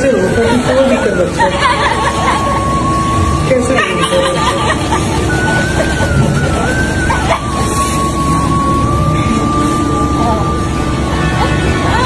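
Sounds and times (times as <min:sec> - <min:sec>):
indistinct voices: 0:00.0 - 0:12.0
thin high-pitched tone: 0:01.9 - 0:12.0.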